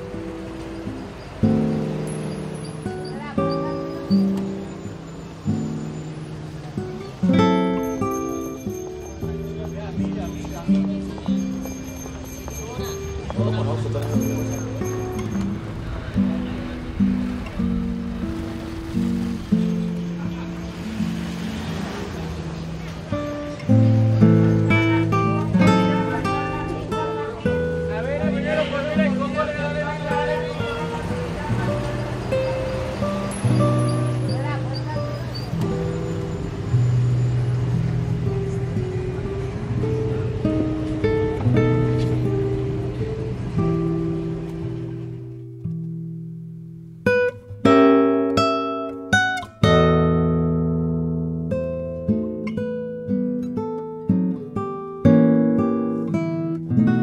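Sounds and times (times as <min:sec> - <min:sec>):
acoustic guitar notes and chord: 0:00.0 - 0:57.0
city street traffic: 0:00.0 - 0:57.0.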